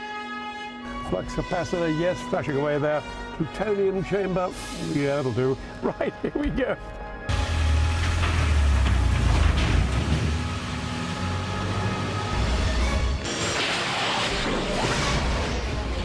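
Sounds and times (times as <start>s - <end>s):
music: 0.0s - 16.0s
car engine starting: 7.3s - 13.2s
car pulling away: 7.3s - 13.2s.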